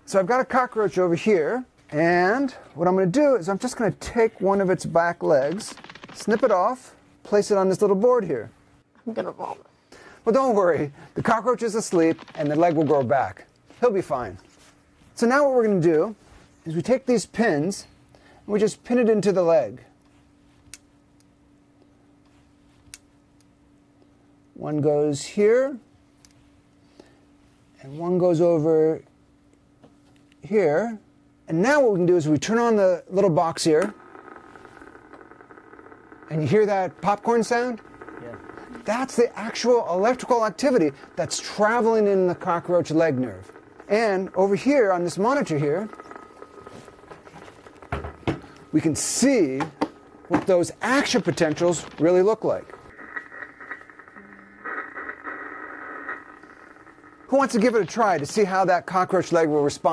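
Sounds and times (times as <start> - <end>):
crackling from speaker: 0.0 - 24.6, 31.8 - 59.9
faint steady hum: 0.0 - 59.9
faint steady whine: 0.0 - 59.9.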